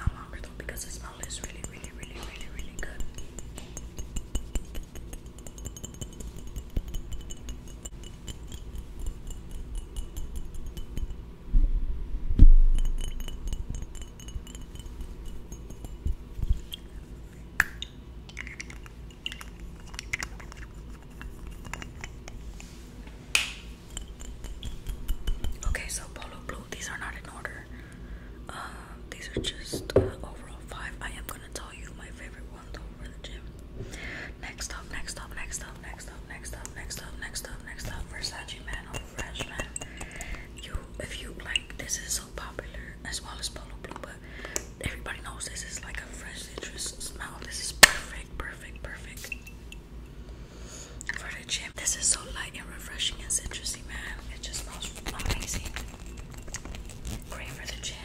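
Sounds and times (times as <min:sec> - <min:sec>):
person whispering: 0:00.0 - 0:03.1, 0:44.8 - 0:49.3, 0:57.3 - 0:58.0
fingers tapping glass bottles: 0:01.2 - 0:11.2, 0:12.7 - 0:16.9, 0:23.9 - 0:25.7, 0:38.7 - 0:40.8.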